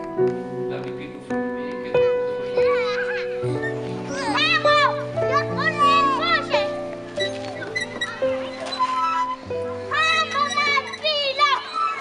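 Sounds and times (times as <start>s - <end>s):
background music with held chords: 0.0s - 8.7s
children calling out and shrieking: 2.3s - 12.0s.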